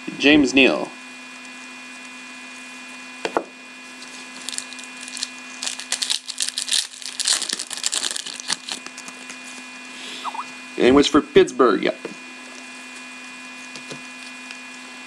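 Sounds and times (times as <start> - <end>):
foil card pack crinkling: 3.9 - 9.7.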